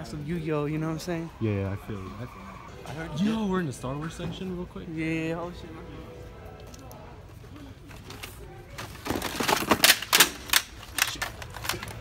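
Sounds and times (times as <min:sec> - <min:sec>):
plastic and cardboard packaging handled: 0:07.8 - 0:12.0
sharp clicks and crinkles: 0:07.9 - 0:12.0.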